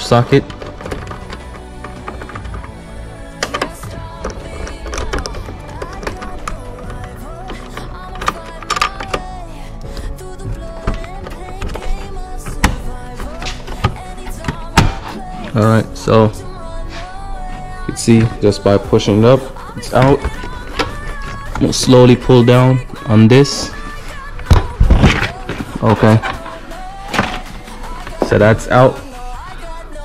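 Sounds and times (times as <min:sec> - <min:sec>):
plastic trim handling: 0:00.0 - 0:28.9
background music: 0:00.0 - 0:30.0.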